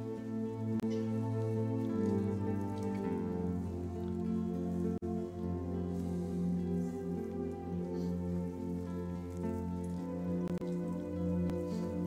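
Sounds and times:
slow instrumental music: 0:00.0 - 0:12.0.

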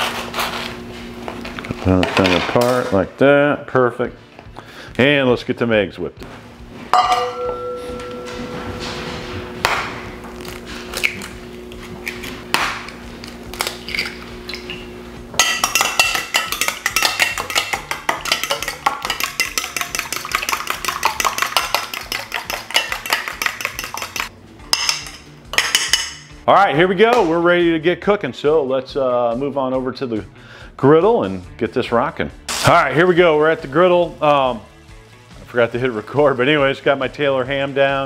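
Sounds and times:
steel bowl clanking and ringing: 0:06.9 - 0:09.1, 0:15.4 - 0:24.3
eggs cracking: 0:12.0 - 0:14.8, 0:15.5 - 0:24.3
fork whisking in steel bowl: 0:15.4 - 0:24.3.

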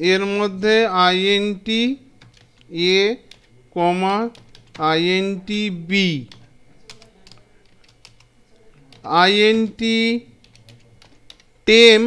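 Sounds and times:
person speaking: 0:00.0 - 0:12.0
computer keyboard key clicks: 0:02.2 - 0:02.7, 0:04.3 - 0:04.8.

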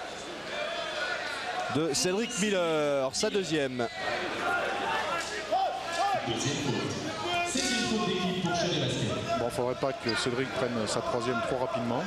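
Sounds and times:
hall background noise: 0:00.0 - 0:12.0.

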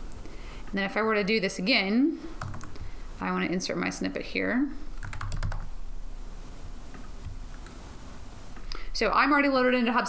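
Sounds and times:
keyboard typing: 0:02.4 - 0:02.9, 0:05.0 - 0:05.7.

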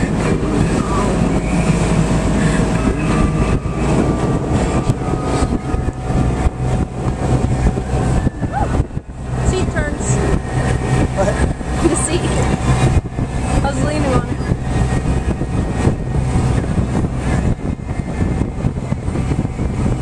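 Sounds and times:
motorboat engine drone: 0:00.0 - 0:20.0
rushing water: 0:00.0 - 0:20.0
wind: 0:00.0 - 0:20.0.

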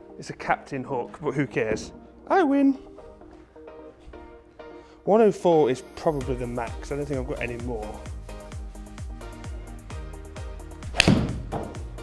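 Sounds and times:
background music with steady beat: 0:00.0 - 0:12.0
golf club striking ball: 0:10.9 - 0:11.8.

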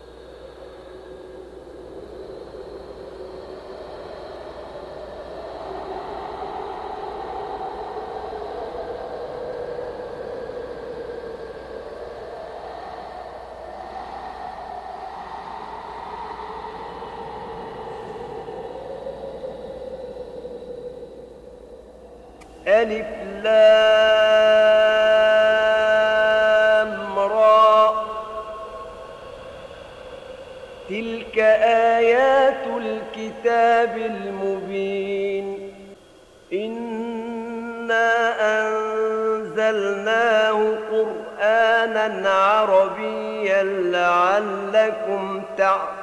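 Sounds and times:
rushing ambient drone: 0:00.0 - 0:46.0.

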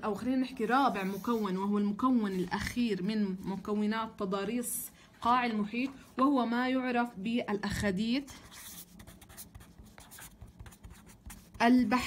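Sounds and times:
pen scratching on paper: 0:08.4 - 0:11.8.

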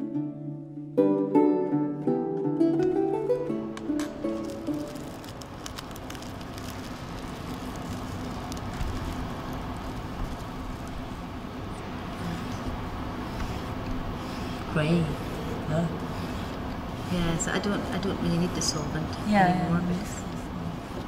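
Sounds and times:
plucked-string music: 0:00.0 - 0:05.5
plastic film crinkling: 0:03.8 - 0:11.5.

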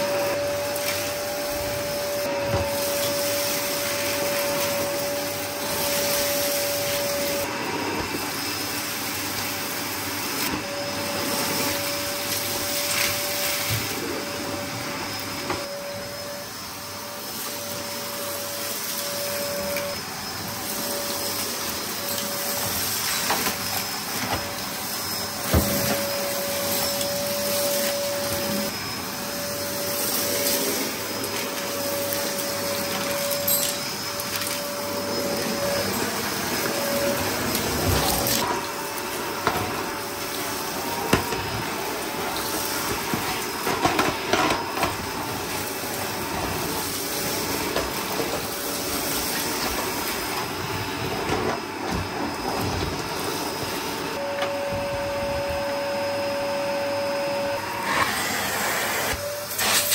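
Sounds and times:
vacuum cleaner running: 0:00.0 - 0:59.9.

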